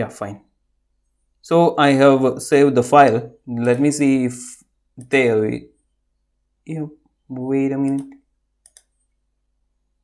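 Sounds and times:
computer mouse double-click: 0:07.9 - 0:09.0.

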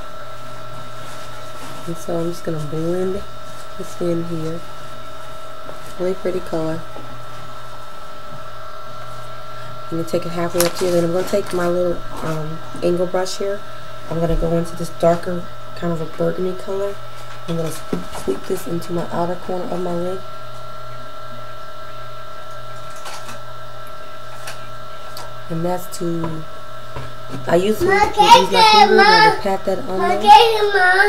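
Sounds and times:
steady hum of fixed tones: 0:00.0 - 0:31.0
soft rustles: 0:00.4 - 0:02.7.

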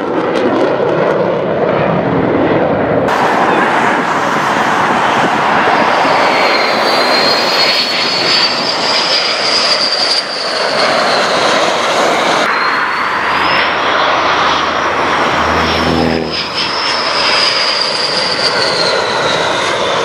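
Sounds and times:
jet engines with turbine whine: 0:00.0 - 0:20.0.

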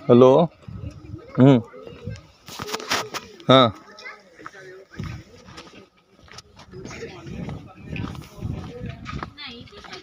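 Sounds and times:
indistinct voices outdoors: 0:00.0 - 0:10.0.

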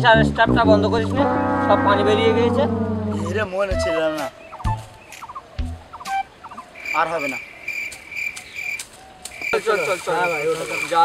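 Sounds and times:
short bird calls: 0:04.0 - 0:10.9
high insect trill: 0:06.8 - 0:11.0.

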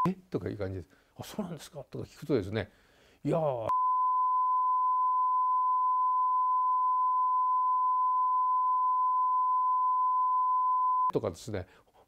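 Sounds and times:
censor bleep tone: 0:03.7 - 0:11.1.

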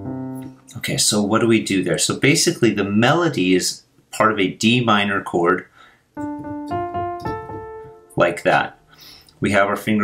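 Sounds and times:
piano notes: 0:00.0 - 0:00.8, 0:06.2 - 0:09.1.

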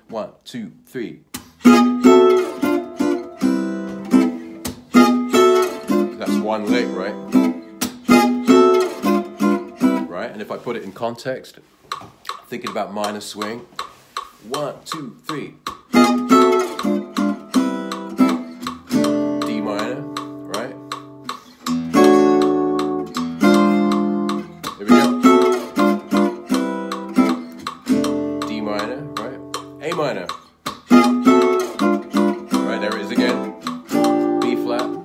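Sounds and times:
acoustic guitar picked notes: 0:01.1 - 0:11.0, 0:12.2 - 0:35.0.

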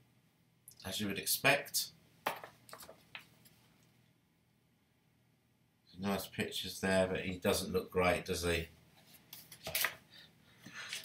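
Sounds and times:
paper rustles and taps: 0:02.2 - 0:03.3, 0:09.3 - 0:10.0.

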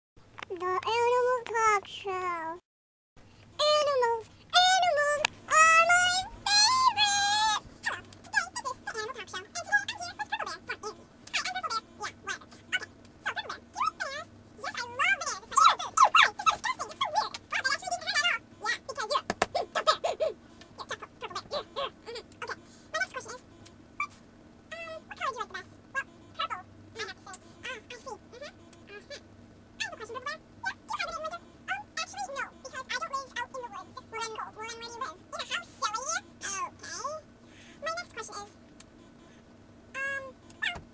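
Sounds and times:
sped-up high-pitched voice chatter: 0:03.6 - 0:23.4
woman babbling in squeaky voice: 0:40.0 - 0:40.8.

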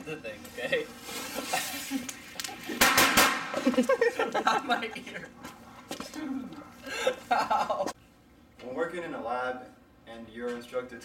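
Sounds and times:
firecracker bang: 0:02.8 - 0:03.6.

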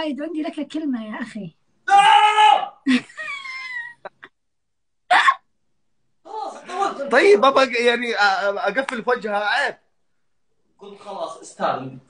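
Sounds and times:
woman's squealing laugh: 0:02.8 - 0:04.3, 0:05.1 - 0:05.4.

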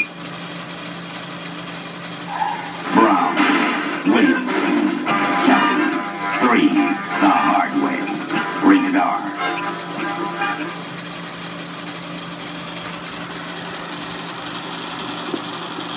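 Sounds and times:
projector motor and fan hum: 0:00.0 - 0:15.9
film trailer voices and music: 0:02.8 - 0:10.8.

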